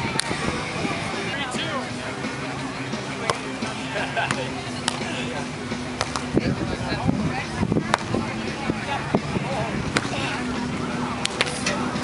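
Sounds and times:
background music: 0.0s - 12.0s
people talking: 0.0s - 12.0s
hands slapping volleyball: 3.3s - 3.5s, 4.2s - 5.1s, 6.0s - 6.3s, 7.9s - 8.2s, 9.9s - 10.2s, 11.2s - 11.6s.

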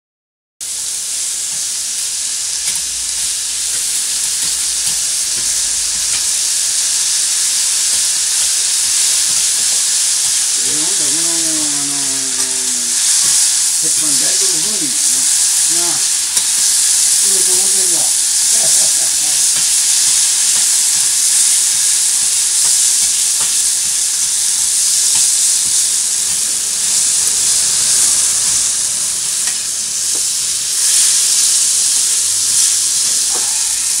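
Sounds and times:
food sizzling on a griddle: 0.6s - 34.0s.

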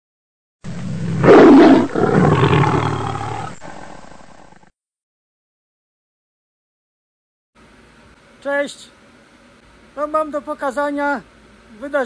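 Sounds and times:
lion roaring: 0.7s - 4.7s.

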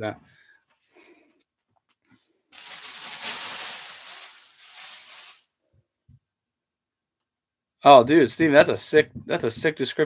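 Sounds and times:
plastic bag crinkling: 2.5s - 5.5s.

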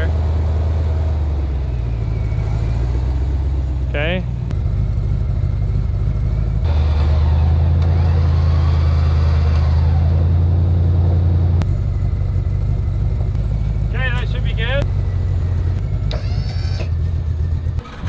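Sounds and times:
truck engine deep hum: 0.0s - 18.0s.

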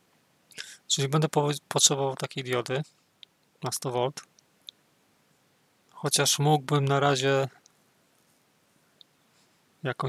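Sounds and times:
person speaking: 3.6s - 4.4s, 6.0s - 7.6s.

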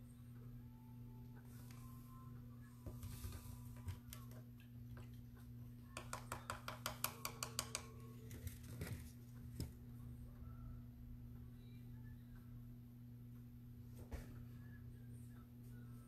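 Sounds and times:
low steady hum: 0.0s - 16.0s
brush tapped against palette: 5.9s - 8.1s.

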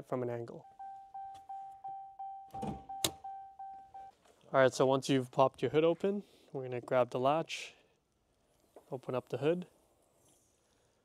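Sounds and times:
door-open warning chime: 0.5s - 4.1s.

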